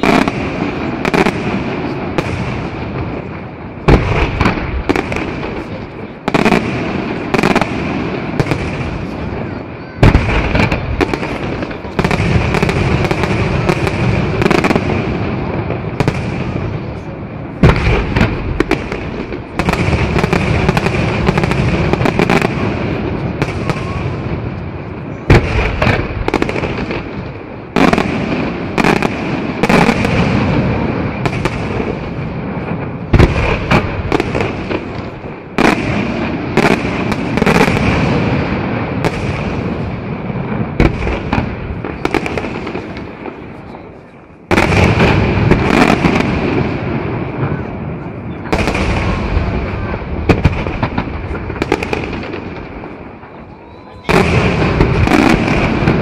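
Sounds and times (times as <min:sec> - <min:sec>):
fireworks bangs and crackle: 0:00.0 - 0:56.0
heavy firework reports: 0:00.0 - 0:56.0.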